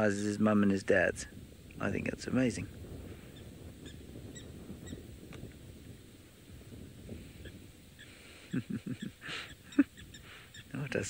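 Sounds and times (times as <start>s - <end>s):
high bird chirps: 8.9s - 10.8s.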